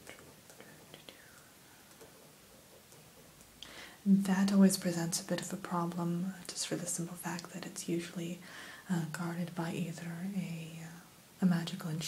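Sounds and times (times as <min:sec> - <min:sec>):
woman's whispery breath: 0:08.4 - 0:08.9.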